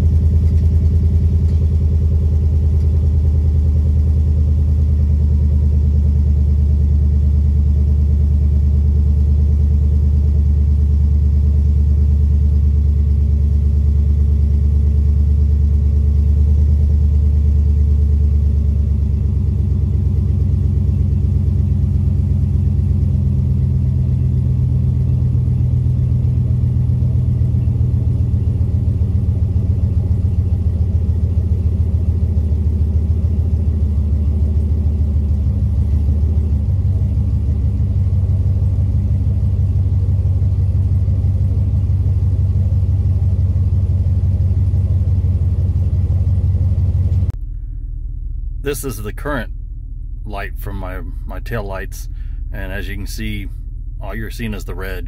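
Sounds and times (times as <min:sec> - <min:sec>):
pickup engine idling: 0:00.0 - 0:55.0.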